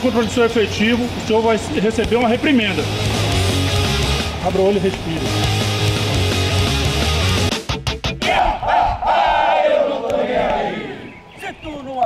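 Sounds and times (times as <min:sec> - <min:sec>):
rock music with heavy bass: 0:02.1 - 0:08.6
police officers shouting battle cry: 0:08.2 - 0:11.1.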